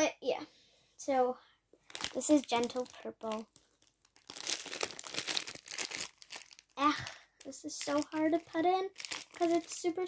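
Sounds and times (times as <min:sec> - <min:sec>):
slime crackling and crinkling: 0:01.8 - 0:10.0.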